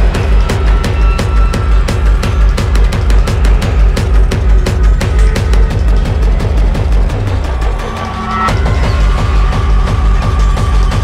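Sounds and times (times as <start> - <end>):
fast steady kick drum: 0.0 - 7.8, 8.5 - 11.0.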